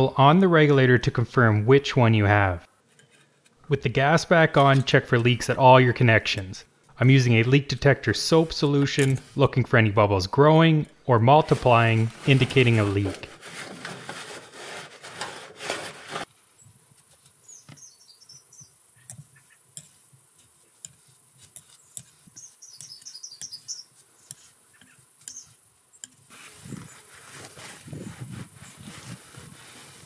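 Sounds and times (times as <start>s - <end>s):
cloth rustling and rubbing: 11.5s - 16.3s, 26.3s - 30.0s
faint high chirping: 17.4s - 19.8s, 21.7s - 27.0s.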